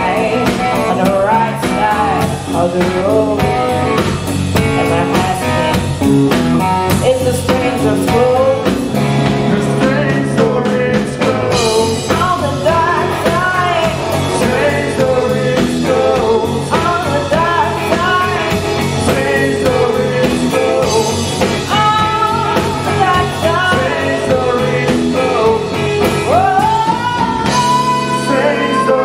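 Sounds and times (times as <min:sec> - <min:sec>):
blues-rock band playing: 0:00.0 - 0:29.0
electric guitar lead line: 0:00.0 - 0:29.0.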